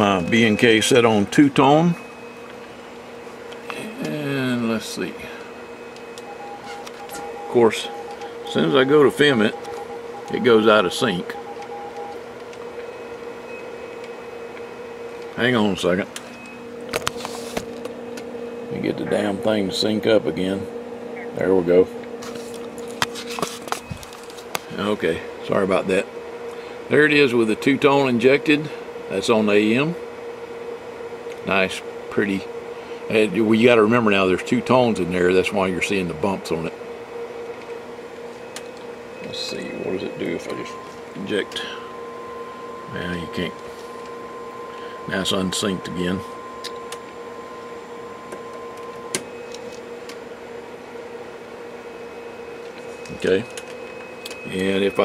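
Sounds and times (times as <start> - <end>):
two-tone test tones: 0.0 - 12.2, 38.3 - 49.8, 51.9 - 55.0
low equipment hum: 0.0 - 55.0.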